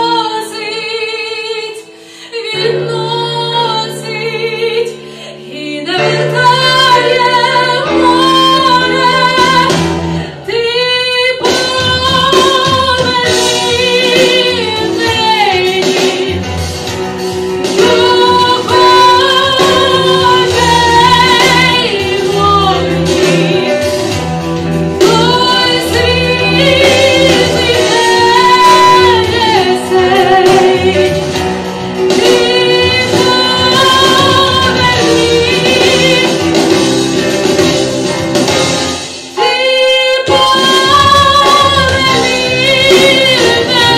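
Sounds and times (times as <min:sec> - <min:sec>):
woman singing pop song: 0:00.0 - 0:16.7, 0:17.6 - 0:37.7, 0:39.4 - 0:43.9
instrumental accompaniment: 0:00.0 - 0:43.9.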